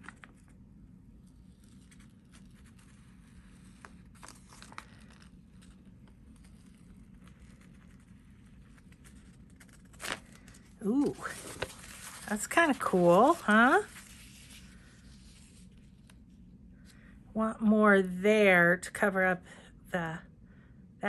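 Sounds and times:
paper peeling and rustling: 0:01.6 - 0:16.2.

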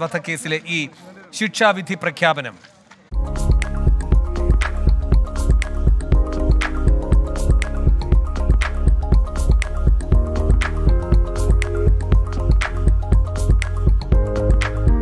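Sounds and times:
news ident music with heavy bass: 0:03.1 - 0:15.0.

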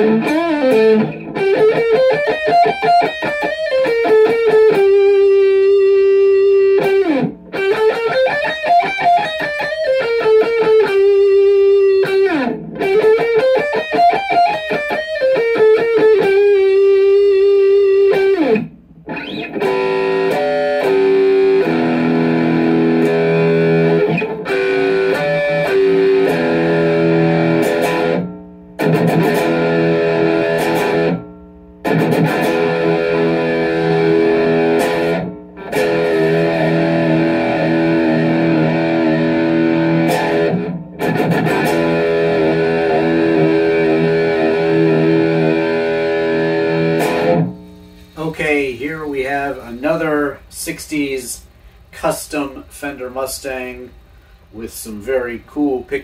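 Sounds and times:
electric guitar chords and riffs: 0:00.0 - 0:54.6
man speaking: 0:48.2 - 0:56.0.

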